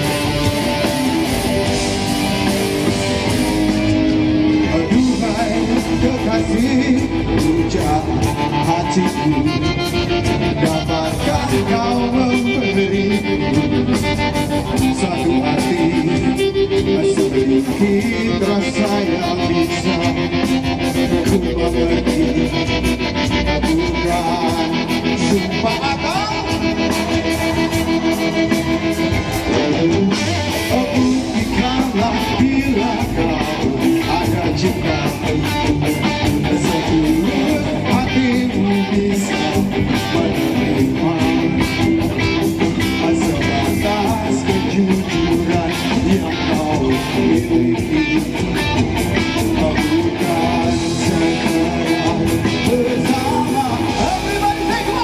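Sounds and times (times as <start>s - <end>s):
live rock band playing: 0.0s - 55.0s
singer's vocals: 0.0s - 55.0s.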